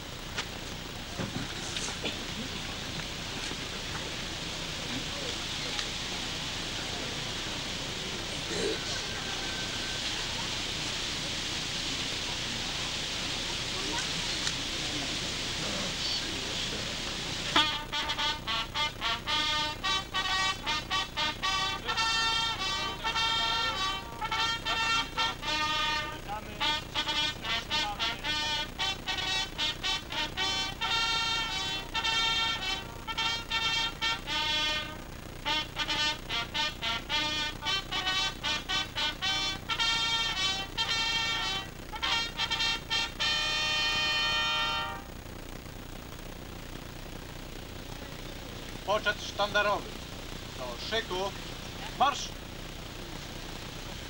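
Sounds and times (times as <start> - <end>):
brass band playing brisk tune: 6.6 - 10.7, 17.3 - 45.1.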